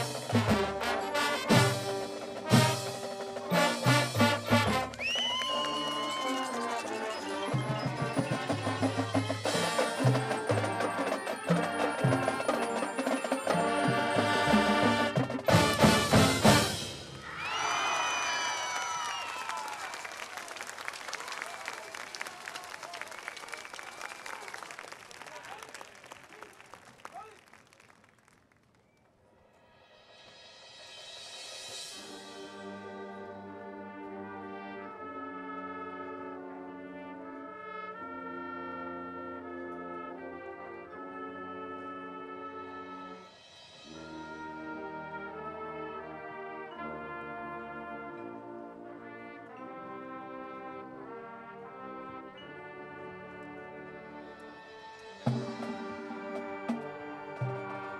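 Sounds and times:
brass band held chords: 0.0s - 17.2s, 31.1s - 57.9s
applause: 4.7s - 7.4s, 17.4s - 28.9s.

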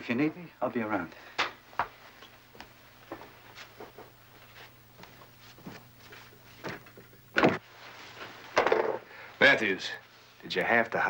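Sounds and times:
door shutting thud: 7.4s - 7.6s.

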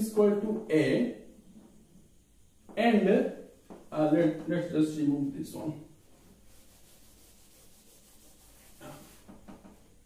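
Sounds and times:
cloth rubbing on chalkboard: 5.9s - 10.0s.

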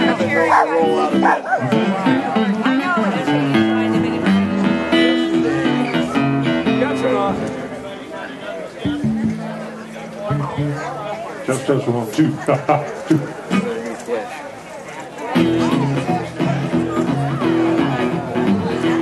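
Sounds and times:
guitar music: 0.0s - 13.8s, 15.3s - 19.0s
people talking: 0.0s - 19.0s.

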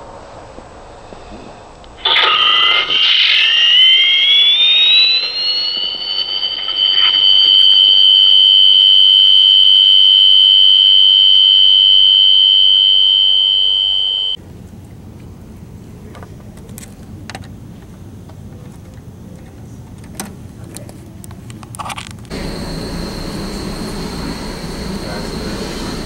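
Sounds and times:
rising alarm tone: 2.0s - 14.4s, 22.3s - 26.0s.

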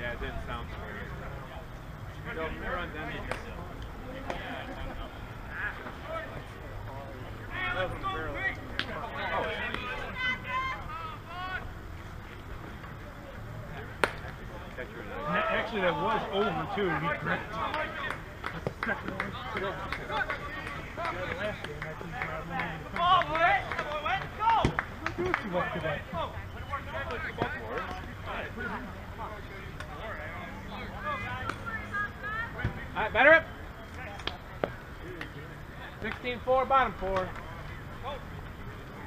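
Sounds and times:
people calling out: 7.3s - 11.8s.

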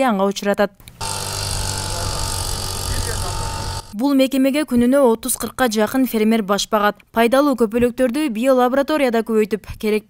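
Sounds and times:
mist-blower sprayer engine running: 1.0s - 4.0s.

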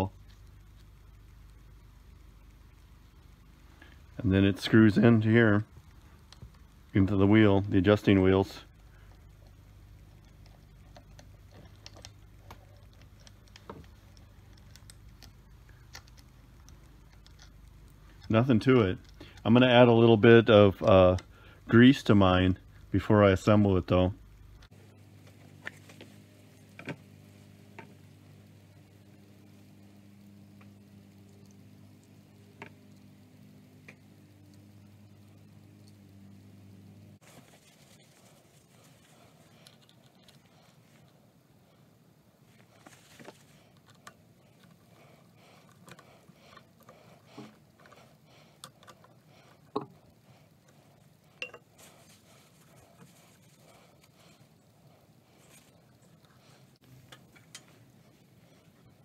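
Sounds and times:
low steady hum: 0.0s - 59.0s.

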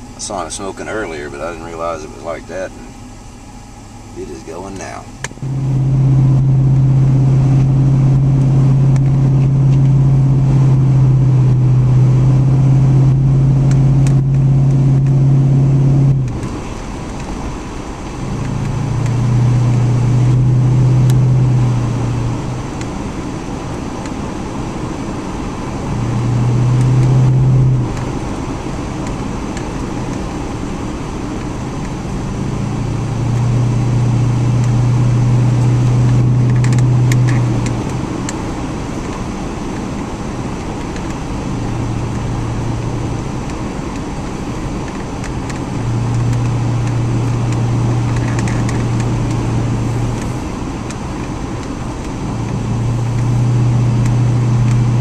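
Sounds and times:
car engine droning: 0.0s - 55.0s.

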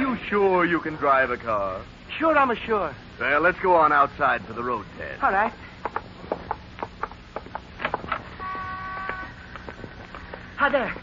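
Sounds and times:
footsteps walking: 5.8s - 11.0s
car horn chord: 8.4s - 9.3s.

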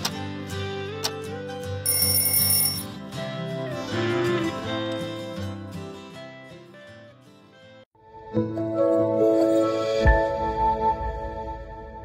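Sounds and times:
high electronic timer chime: 1.9s - 2.9s.

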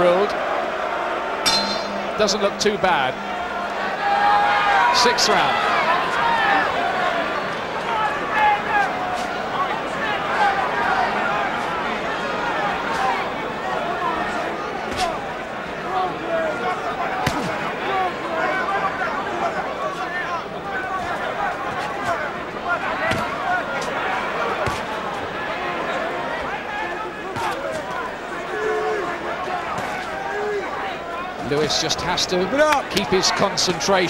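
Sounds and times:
crowd shouting: 0.0s - 34.0s.

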